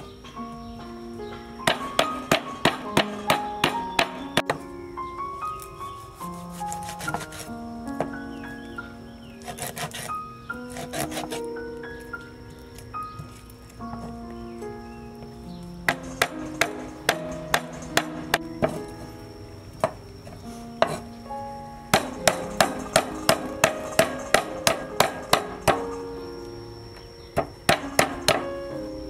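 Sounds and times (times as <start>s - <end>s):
background music: 0.0s - 29.0s.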